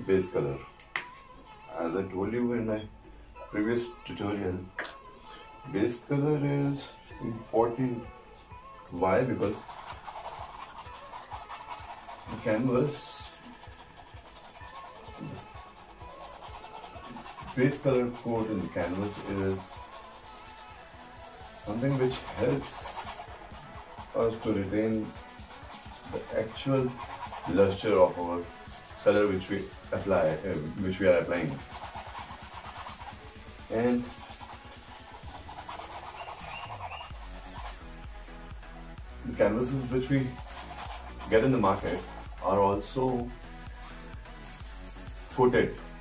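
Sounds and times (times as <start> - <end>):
faint background music: 0.0 - 46.0
scratchy rubbing on canvas: 9.2 - 37.9, 39.6 - 45.5.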